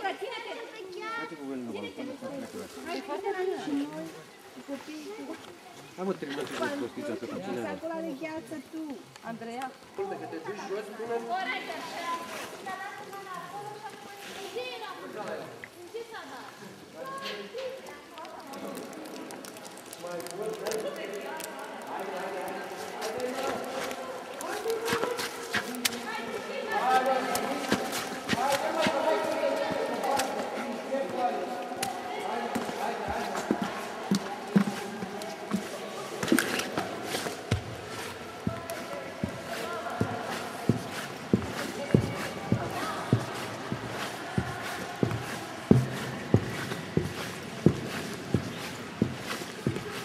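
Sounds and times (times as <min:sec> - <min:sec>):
people talking indistinctly: 0:00.0 - 0:50.0.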